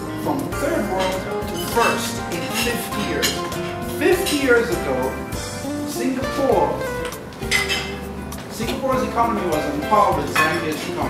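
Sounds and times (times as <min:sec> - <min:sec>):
background music: 0:00.0 - 0:11.0
cutlery and dishes clinking: 0:00.9 - 0:03.8, 0:07.0 - 0:09.0, 0:10.2 - 0:11.0.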